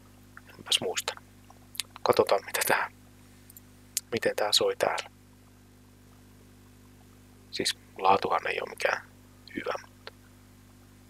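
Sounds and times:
faint electrical hum with hiss: 0.0s - 11.0s.

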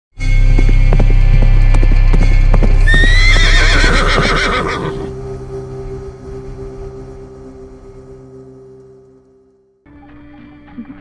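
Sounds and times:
horse hoofbeats galloping: 0.2s - 5.0s
deep musical drone: 0.2s - 11.0s
horse whinny: 2.8s - 5.1s.

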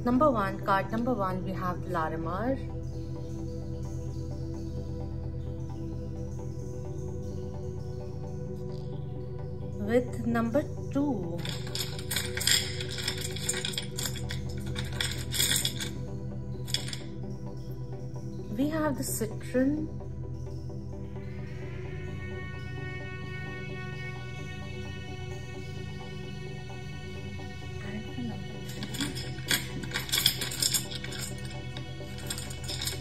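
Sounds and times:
soft background music: 0.0s - 33.0s
bright metallic jingling: 11.4s - 16.0s, 16.7s - 17.0s, 28.6s - 33.0s
crystal stones clinking together: 11.4s - 16.0s, 16.6s - 17.1s, 28.4s - 33.0s.

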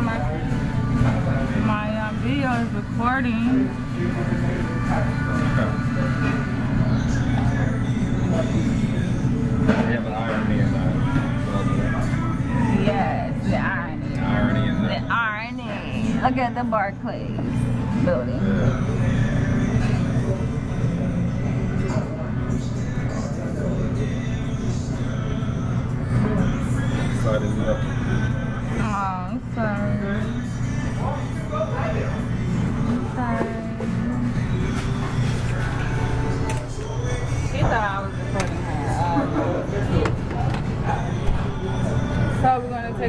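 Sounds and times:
people talking: 0.0s - 18.9s, 28.8s - 30.4s, 33.0s - 34.3s, 37.5s - 43.0s
indistinct voices: 0.0s - 43.0s
music playing: 0.0s - 43.0s
steady low hum: 0.0s - 43.0s.

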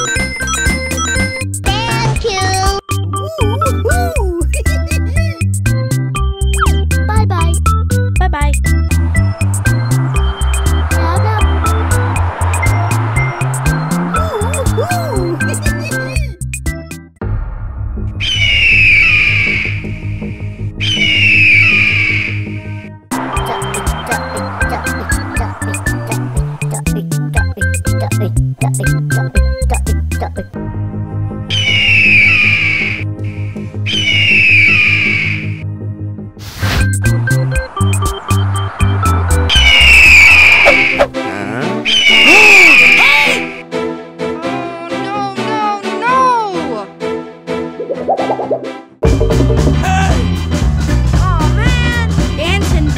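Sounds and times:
children's background music: 0.0s - 17.0s, 22.6s - 30.6s, 43.0s - 52.9s
eagle screech: 41.9s - 43.4s
music with repeating bass line: 49.0s - 50.4s.

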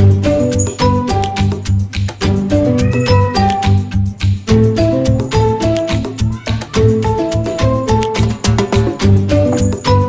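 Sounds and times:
upbeat background music: 0.0s - 10.0s
cat meowing: 2.6s - 3.7s, 6.2s - 7.0s.

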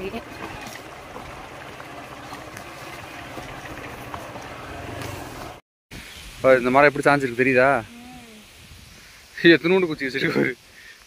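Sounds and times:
motorbike engine running: 0.0s - 5.6s
wind noise on microphone: 8.4s - 9.2s.

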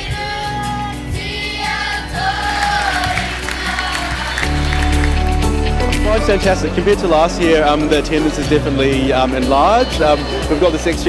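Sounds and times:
children singing together: 0.0s - 5.0s
bass music bed: 2.1s - 10.6s.

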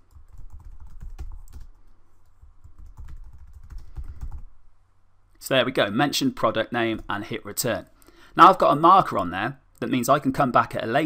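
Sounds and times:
typing on computer keyboard: 0.0s - 1.8s, 2.6s - 4.5s.

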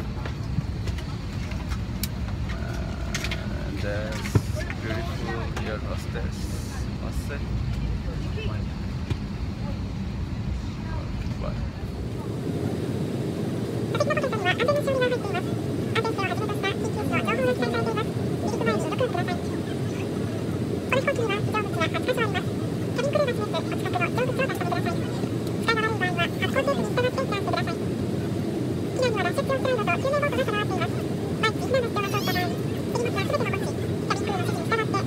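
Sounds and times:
airplane cabin rumble: 0.0s - 35.0s.

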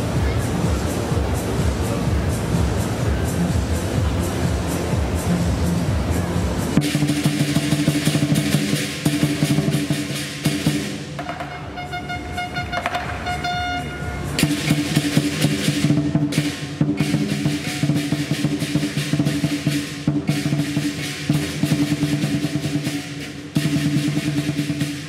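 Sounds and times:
crashing cymbals: 0.0s - 11.2s, 13.1s - 25.0s
large drum beating: 0.0s - 25.0s
held pitched tone: 11.5s - 14.4s.

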